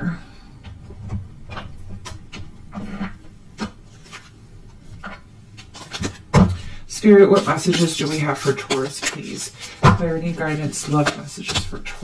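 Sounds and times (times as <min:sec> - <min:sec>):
cards being shuffled: 0:01.5 - 0:12.0.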